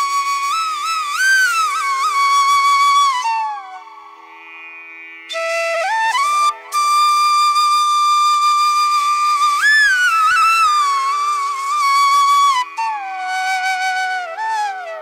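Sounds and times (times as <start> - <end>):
flute melody: 0.0 - 4.0, 5.3 - 15.0.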